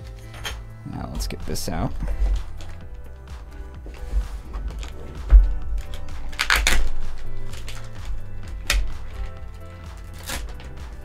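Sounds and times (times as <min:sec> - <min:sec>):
background music with bass: 0:00.0 - 0:11.0
plastic bag crinkling: 0:03.9 - 0:11.0.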